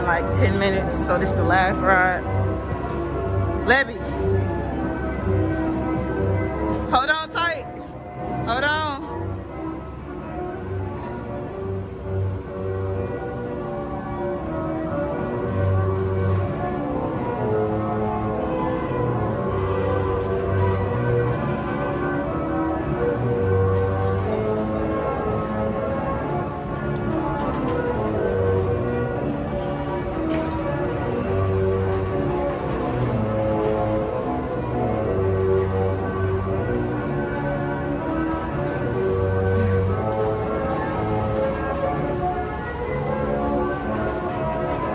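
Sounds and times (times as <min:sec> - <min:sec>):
carousel music: 0:00.0 - 0:44.9.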